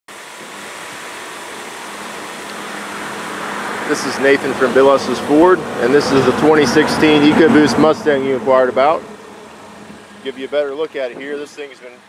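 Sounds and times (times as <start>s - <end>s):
steady rushing hiss: 0.1s - 12.0s.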